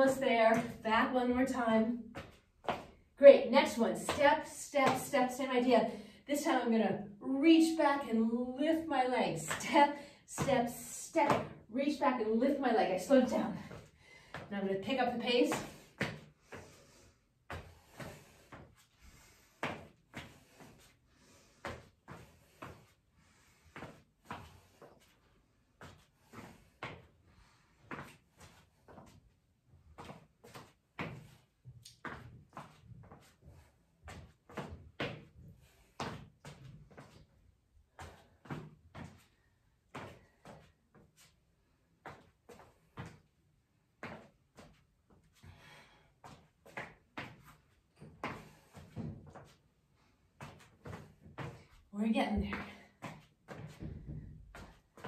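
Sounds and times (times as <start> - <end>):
sandalled footfalls on rubber floor: 0.0 - 5.5, 13.0 - 55.0.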